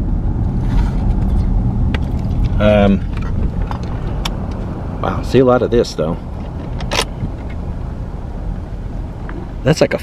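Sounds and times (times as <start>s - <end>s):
engine and road rumble: 0.0s - 10.0s.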